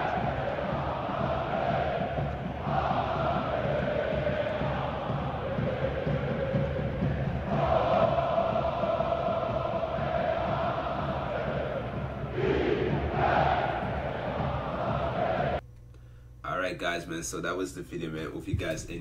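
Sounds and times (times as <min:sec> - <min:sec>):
football crowd chanting: 0:00.0 - 0:15.6
stadium crowd noise: 0:00.0 - 0:15.6.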